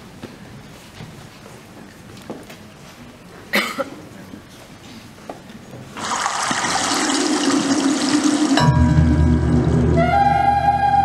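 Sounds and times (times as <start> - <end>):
quiet hall background: 0.0 - 11.0
person coughing: 3.5 - 4.0.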